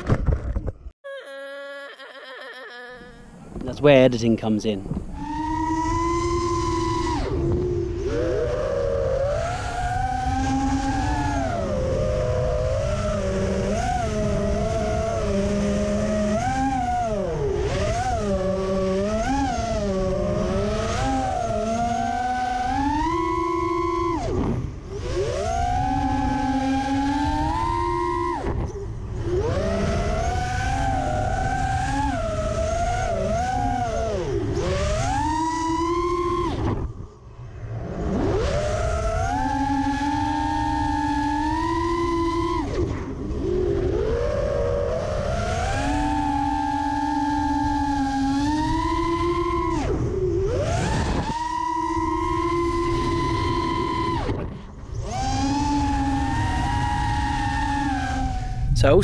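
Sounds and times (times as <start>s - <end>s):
rush of wind: 3.2s - 23.1s, 52.8s - 59.0s
drone motors whining: 4.8s - 59.0s.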